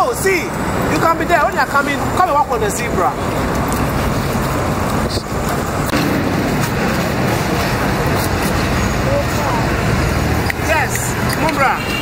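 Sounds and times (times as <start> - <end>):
road traffic rumble: 0.0 - 12.0
voices: 0.0 - 12.0.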